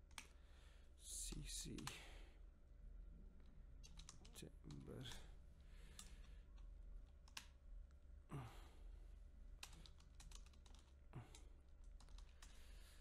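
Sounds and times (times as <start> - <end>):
typing on computer keyboard: 3.8 - 4.8, 9.6 - 12.6.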